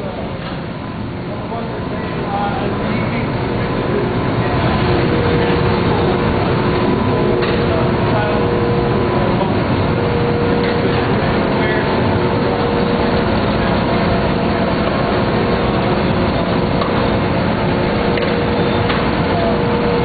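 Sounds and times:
faint steady hums: 0:00.0 - 0:20.0
machinery din: 0:00.0 - 0:20.0.

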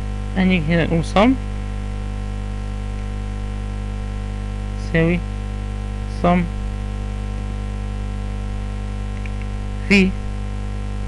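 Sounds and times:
electrical mains hum: 0:00.0 - 0:11.0
person speaking: 0:00.3 - 0:01.5, 0:04.8 - 0:05.3, 0:06.1 - 0:10.3.

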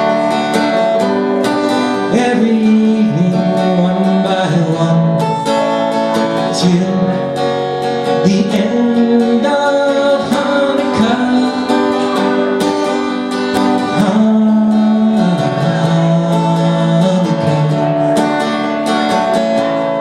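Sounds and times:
acoustic guitar strumming: 0:00.0 - 0:20.0
man singing: 0:00.0 - 0:20.0.

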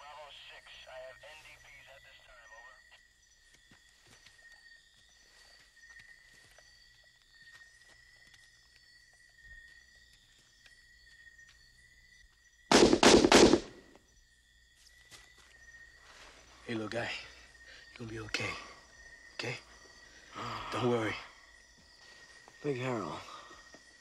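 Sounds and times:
night insects chirping: 0:00.0 - 0:24.0
gunshots: 0:12.7 - 0:13.9.

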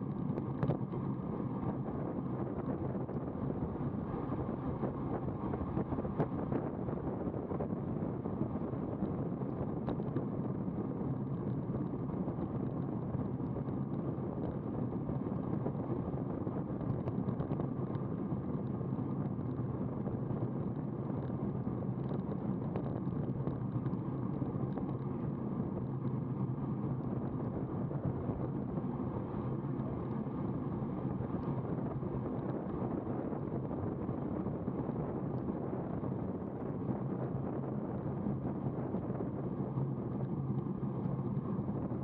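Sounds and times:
bicycle road noise: 0:00.0 - 0:42.0
wind on microphone: 0:00.0 - 0:42.0.

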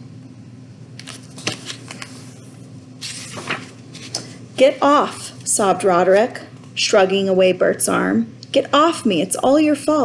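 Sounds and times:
faint steady hum: 0:00.0 - 0:10.0
papery rustle of book: 0:01.0 - 0:04.4.

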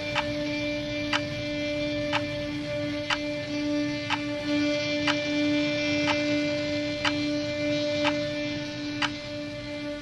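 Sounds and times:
sustained droning tone: 0:00.0 - 0:10.0
sharp clock-like tick: 0:00.1 - 0:00.4, 0:01.1 - 0:01.3, 0:03.1 - 0:03.3, 0:04.1 - 0:04.3, 0:06.0 - 0:06.3, 0:07.0 - 0:07.3, 0:08.0 - 0:08.3, 0:09.0 - 0:09.2.

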